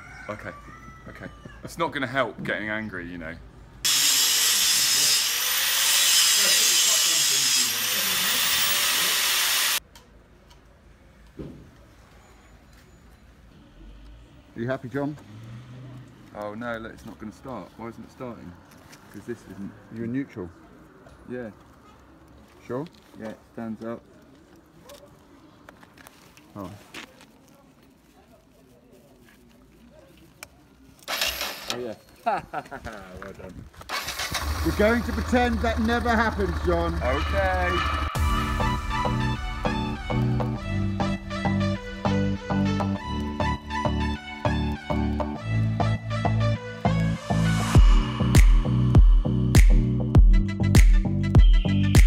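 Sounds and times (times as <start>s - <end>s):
angle grinder grinding metal: 3.9s - 9.8s, 31.1s - 31.8s.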